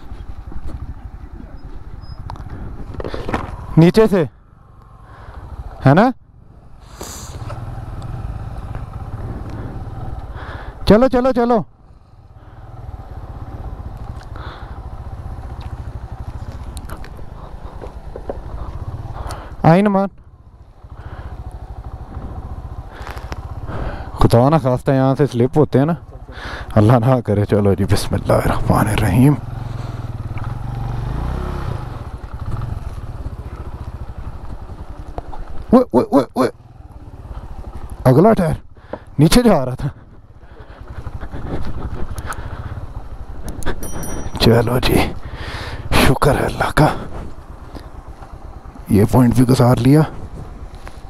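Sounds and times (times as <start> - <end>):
motorcycle engine idling: 0.0 - 51.0.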